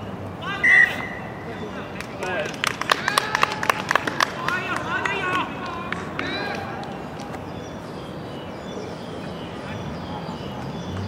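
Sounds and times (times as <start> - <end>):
sharp hand claps: 1.9 - 7.3.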